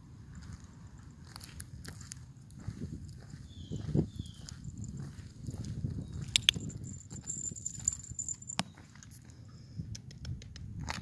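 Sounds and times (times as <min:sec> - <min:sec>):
walking and handling noise: 0:00.2 - 0:09.5
pet training clicker click: 0:06.4 - 0:06.6.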